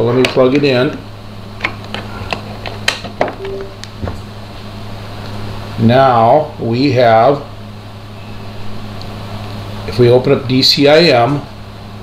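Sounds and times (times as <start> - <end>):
low electrical hum: 0.0 - 12.0
short tone: 3.4 - 3.8.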